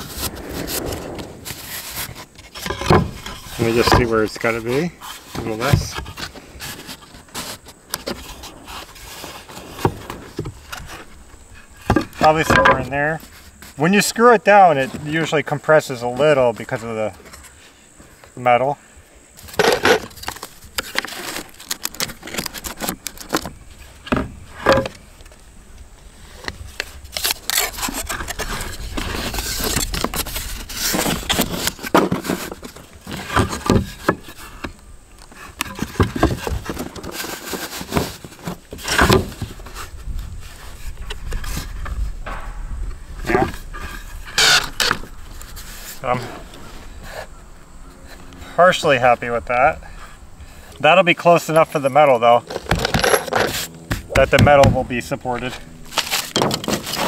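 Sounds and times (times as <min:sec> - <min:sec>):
wooden boards knocking and scraping: 0:00.0 - 0:11.2, 0:11.8 - 0:13.8, 0:19.4 - 0:25.1, 0:27.5 - 0:39.9, 0:40.7 - 0:47.3, 0:52.4 - 0:55.0, 0:55.9 - 0:57.0.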